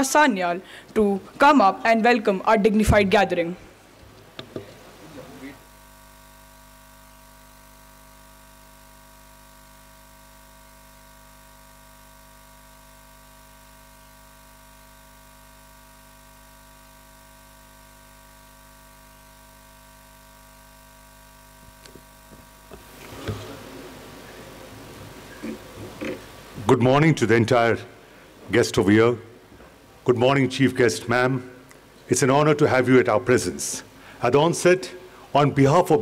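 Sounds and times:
electrical hum and hiss: 0.0 - 36.0.

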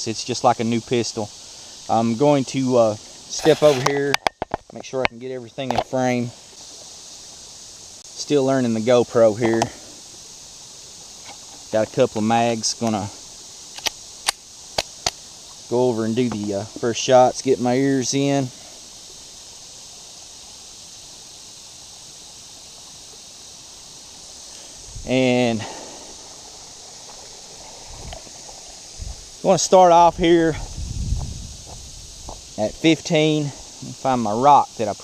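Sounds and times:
outdoor background hiss: 0.0 - 35.0
footsteps on grass and gravel: 3.2 - 4.1, 24.4 - 33.8
pistol clicks: 13.7 - 15.2.

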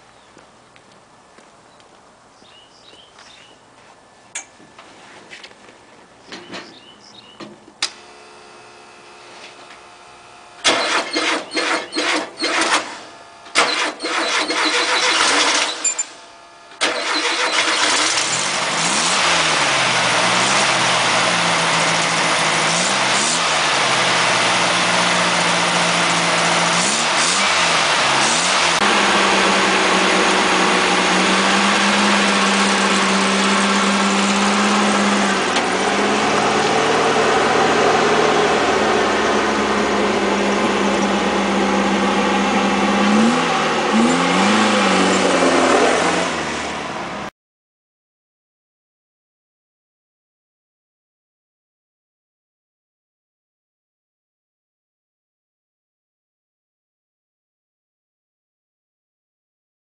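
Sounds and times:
engine idling: 7.9 - 45.1
engine cranking: 10.6 - 19.7
engine revving: 10.6 - 47.3.

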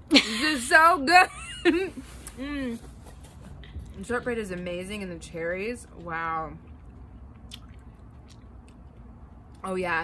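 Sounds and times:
low background rumble: 0.0 - 10.0
person chewing: 6.6 - 9.6.

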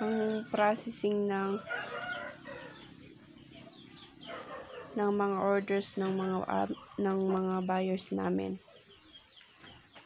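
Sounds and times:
chickens clucking: 0.0 - 10.0.

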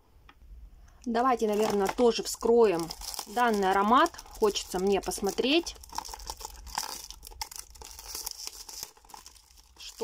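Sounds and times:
cellophane crinkling and tearing: 1.4 - 10.0.

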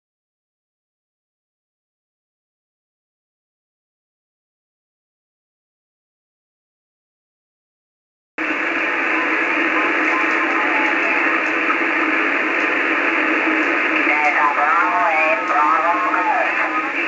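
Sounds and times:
distorted radio voice: 8.4 - 17.0
muffled static hiss: 8.4 - 17.0.

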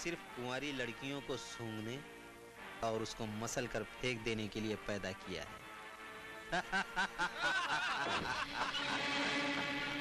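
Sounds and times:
man laughing: 6.5 - 9.3.

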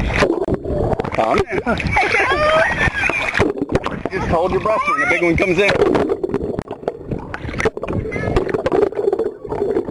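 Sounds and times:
sea water sloshing and splashing: 0.0 - 9.9.

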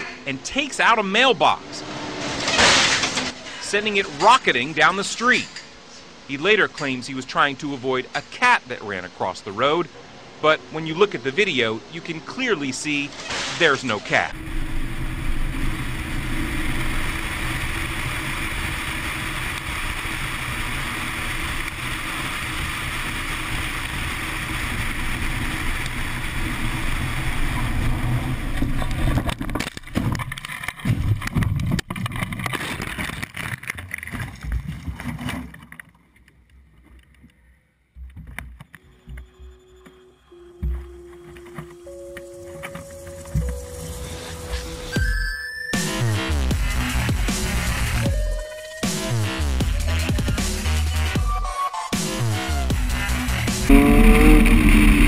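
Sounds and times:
crash knocks thuds and scrapes: 2.1 - 3.4
electronic music: 53.3 - 55.0
motorcycle engine: 53.6 - 55.0.

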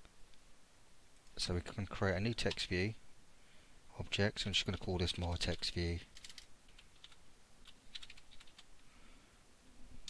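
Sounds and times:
typing on keyboard: 5.3 - 8.7.

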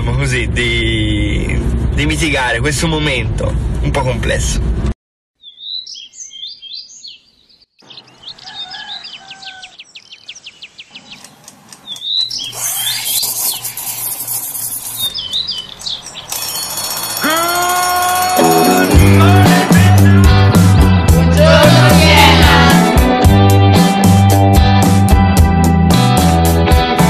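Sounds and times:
birds chirping: 5.4 - 18.9
music with sliding notes: 16.4 - 27.0.

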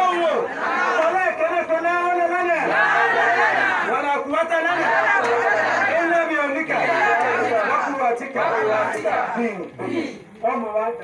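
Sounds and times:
man talking into a microphone: 9.3 - 11.0.

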